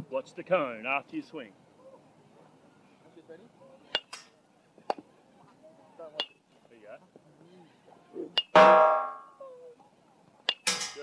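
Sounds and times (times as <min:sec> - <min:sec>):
ball rattling chain-link fence: 0:10.5 - 0:11.0.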